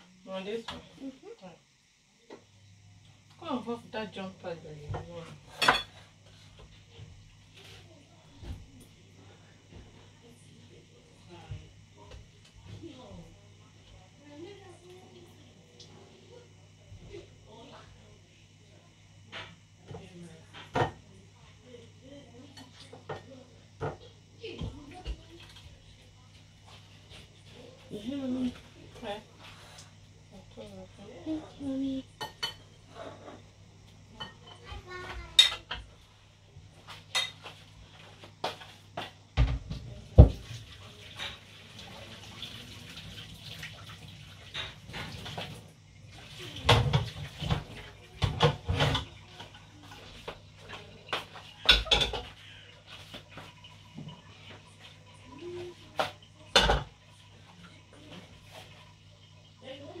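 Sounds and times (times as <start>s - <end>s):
dishes and cutlery clattering: 5.0s - 6.0s, 35.3s - 35.9s, 36.9s - 37.6s, 46.6s - 54.7s.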